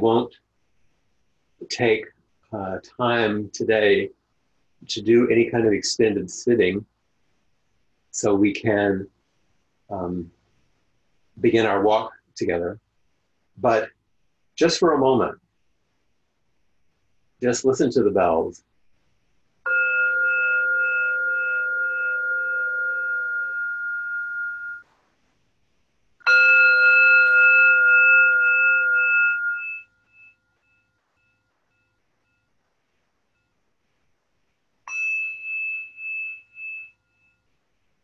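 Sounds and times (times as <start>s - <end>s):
meditation bell ringing: 19.6s - 24.8s, 26.2s - 32.6s, 34.8s - 37.6s.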